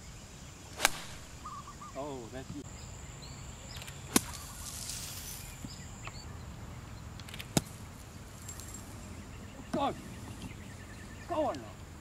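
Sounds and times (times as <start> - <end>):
golf club striking sand: 0.7 - 1.6, 4.1 - 5.3.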